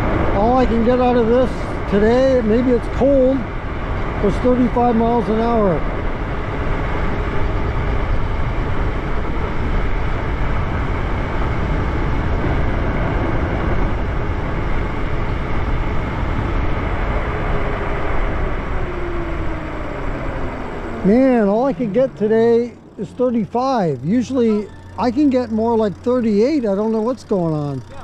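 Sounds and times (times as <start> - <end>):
wind rushing over microphone: 0.0 - 26.0
electric motor whine: 2.2 - 28.0.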